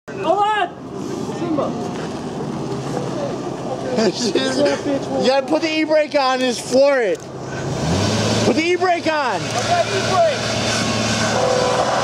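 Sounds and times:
car engine idling: 0.2s - 12.0s
people chatting: 2.8s - 7.2s, 8.5s - 10.5s.

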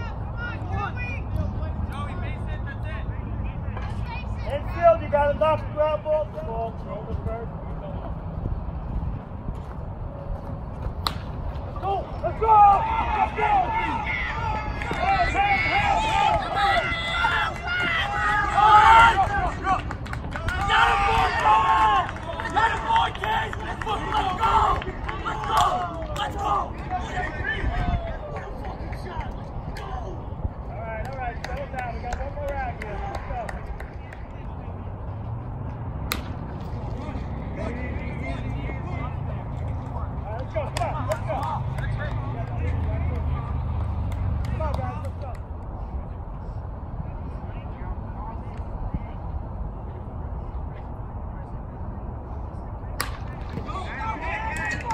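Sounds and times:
bat cracking ball: 10.8s - 11.6s, 36.0s - 36.6s, 53.0s - 53.8s
people shouting: 11.8s - 19.8s, 20.4s - 28.4s, 53.7s - 54.9s
people yelling and cheering: 11.8s - 35.0s, 53.0s - 54.9s.

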